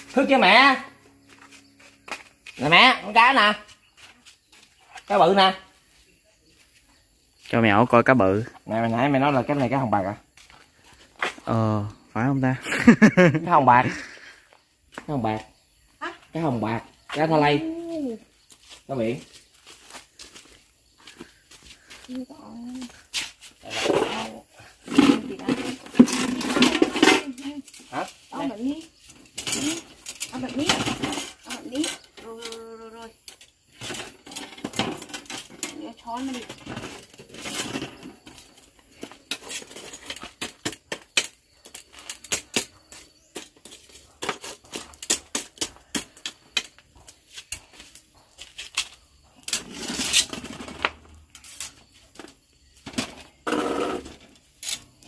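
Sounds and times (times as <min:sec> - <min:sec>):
people talking: 0:11.5 - 0:12.6, 0:27.0 - 0:28.9, 0:35.7 - 0:36.5.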